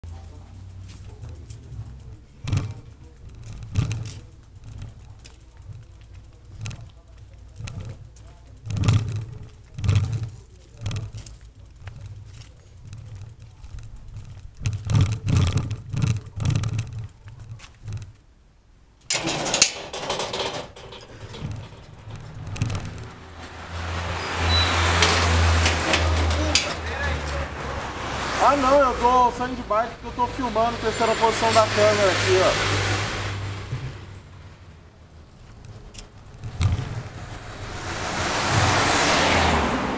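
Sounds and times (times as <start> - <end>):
camera knocks and rattles: 19.5 - 23.6, 36.2 - 38.9
car passing close by: 22.9 - 29.4, 30.4 - 34.6, 36.5 - 39.9.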